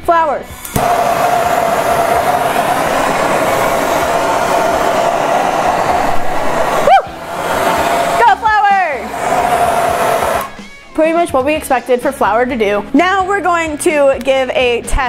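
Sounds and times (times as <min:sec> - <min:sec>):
gas torch hissing roar: 0:00.3 - 0:10.9
person whooping: 0:06.7 - 0:07.2.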